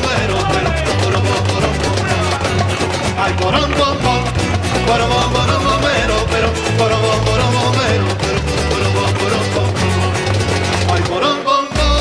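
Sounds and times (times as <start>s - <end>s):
live band with pulsing bass: 0.0s - 12.0s.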